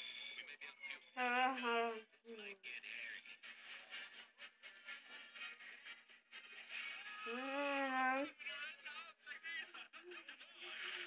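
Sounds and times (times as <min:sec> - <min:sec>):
person singing: 0:07.3 - 0:08.3.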